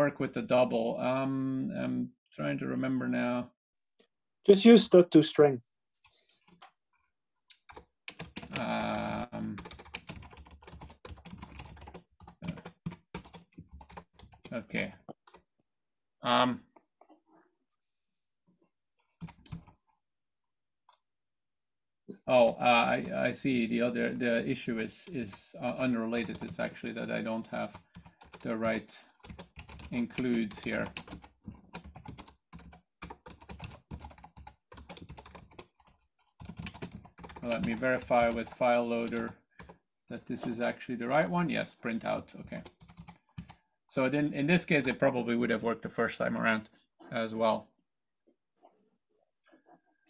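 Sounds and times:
typing on computer keyboard: 7.5 - 15.5, 19.1 - 19.8, 22.4 - 23.4, 24.1 - 26.7, 27.4 - 39.8, 42.5 - 43.6.

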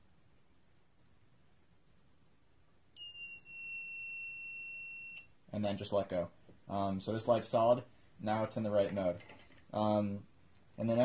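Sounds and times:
long high-pitched buzzer beep: 3.0 - 5.3.

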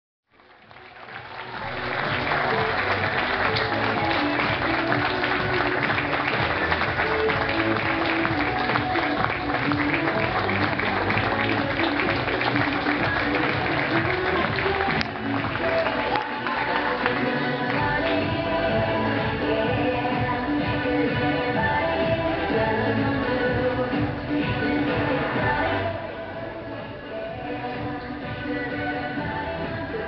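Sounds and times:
audience clapping: 0.3 - 18.3
music: 0.3 - 30.0.

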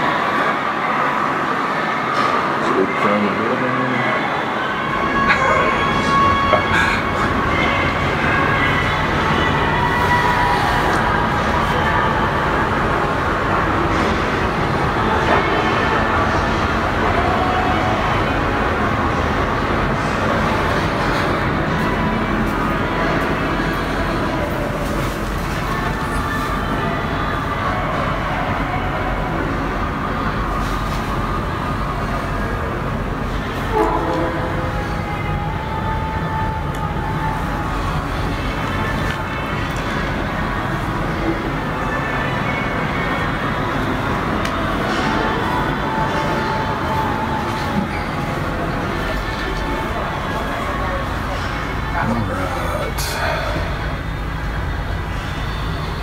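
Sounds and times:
faint music: 0.0 - 56.0
loud background noise: 0.0 - 56.0.

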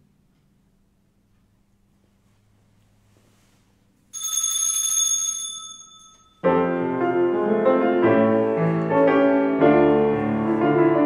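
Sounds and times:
small bell ringing: 4.1 - 6.5.

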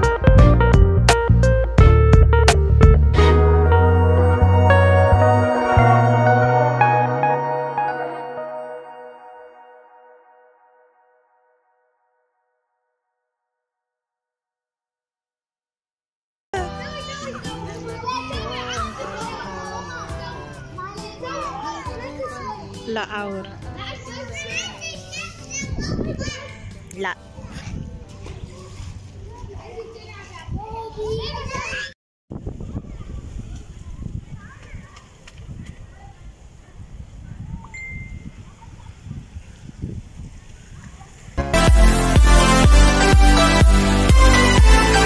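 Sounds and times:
clear high tone: 3.1 - 12.5
children shouting in a pool: 16.6 - 22.8, 23.8 - 26.6, 29.3 - 32.0
wind buffeting microphone: 25.6 - 26.6, 30.3 - 41.4.

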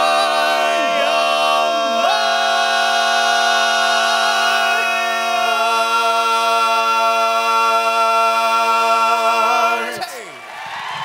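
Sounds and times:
men's quartet singing a cappella: 0.0 - 10.3.

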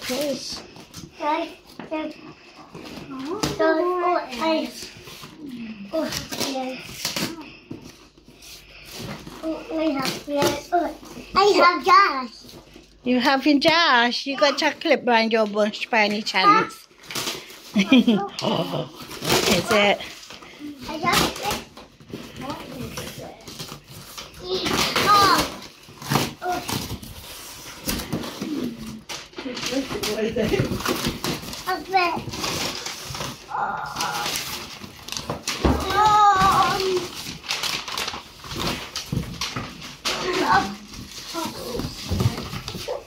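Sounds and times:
paper and cardboard rustling: 0.0 - 43.0
child exclaiming: 35.8 - 37.0.

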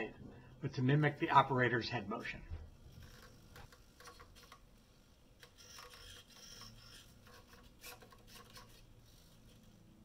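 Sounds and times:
faint servo whirring: 2.8 - 10.0.

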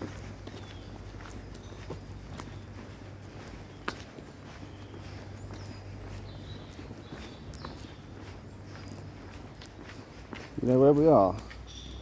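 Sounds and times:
footsteps on tarmac: 0.0 - 12.0.

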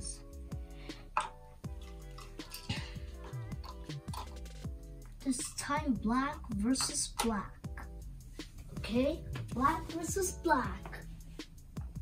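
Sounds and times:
music with held chords and beat: 0.0 - 12.0.

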